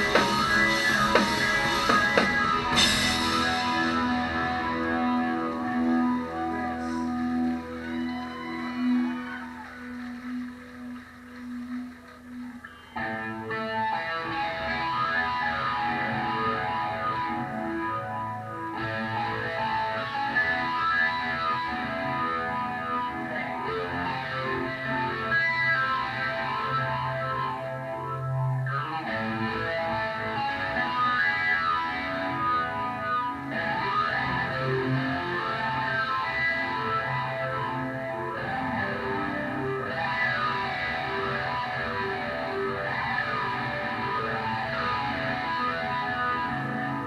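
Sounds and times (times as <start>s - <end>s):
live rock band: 0.0s - 47.0s.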